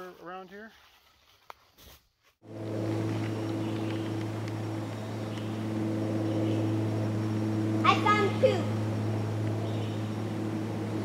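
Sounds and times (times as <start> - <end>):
low mechanical hum: 2.4 - 11.0.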